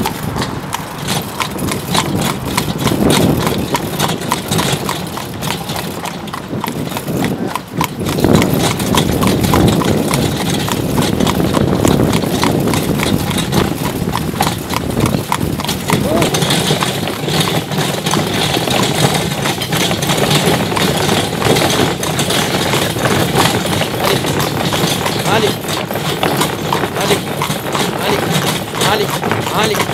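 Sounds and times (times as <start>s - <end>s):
horse hooves clip-clopping on cobblestones: 0.0s - 29.9s
people's voices: 15.9s - 16.6s, 27.9s - 29.9s.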